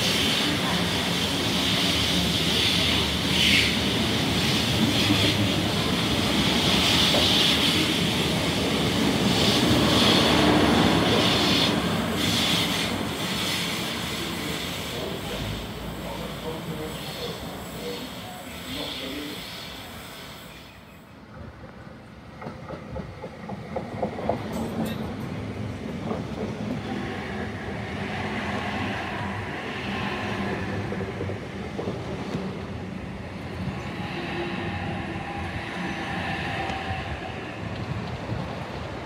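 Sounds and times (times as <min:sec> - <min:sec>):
electric train passing: 0:00.0 - 0:39.0.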